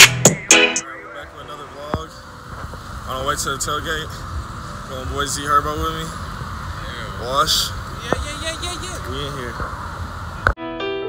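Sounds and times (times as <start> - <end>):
faint voices talking: 0.8 - 9.6
road traffic rumble: 0.8 - 10.6.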